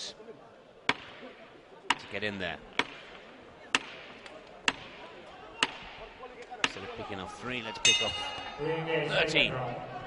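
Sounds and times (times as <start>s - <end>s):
faint arena background: 0.0s - 10.0s.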